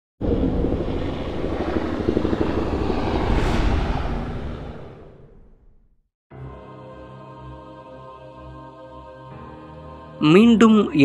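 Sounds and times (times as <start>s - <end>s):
helicopter rotor and engine: 0.2s - 3.3s
rising whoosh: 0.2s - 6.0s.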